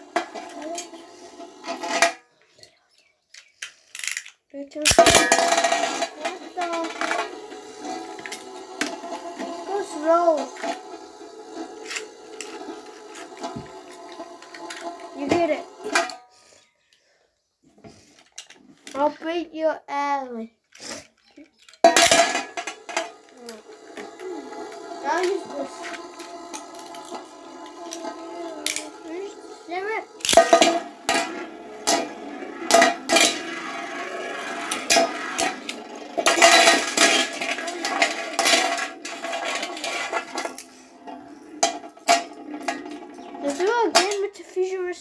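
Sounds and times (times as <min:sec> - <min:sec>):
spinning tops whirring on metal: 0:00.0 - 0:02.2, 0:04.8 - 0:16.2, 0:21.7 - 0:45.0.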